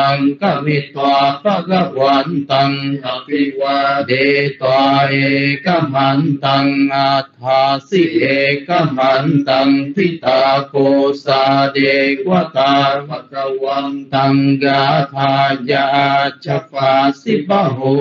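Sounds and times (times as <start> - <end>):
man chanting: 0.0 - 18.0.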